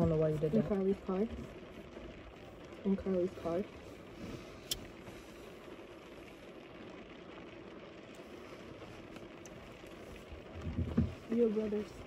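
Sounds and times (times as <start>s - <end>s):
car heater blowing: 0.0s - 12.0s.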